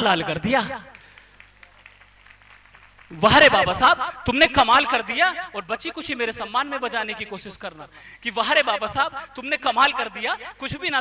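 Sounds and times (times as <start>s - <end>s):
public address system hum: 3.1s - 11.0s.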